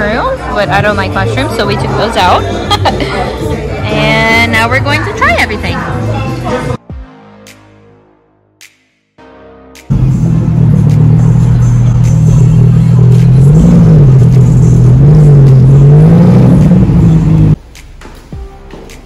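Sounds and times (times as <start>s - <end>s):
car engine revving: 9.9s - 17.6s.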